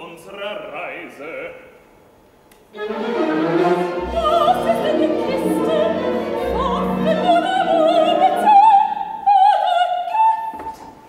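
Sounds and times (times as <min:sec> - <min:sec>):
orchestra bowed strings chords: 0:02.7 - 0:09.4.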